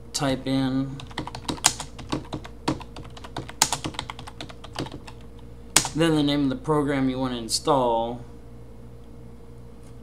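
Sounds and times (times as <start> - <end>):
keyboard typing: 1.0 - 6.0.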